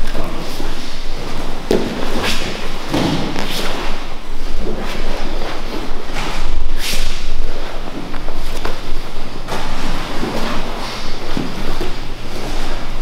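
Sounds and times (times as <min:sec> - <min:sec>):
bodies thudding on a mat: 0:01.3 - 0:04.0.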